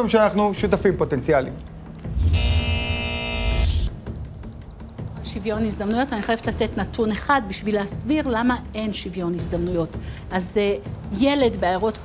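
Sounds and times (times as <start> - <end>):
electronic buzzer tone: 2.1 - 3.9.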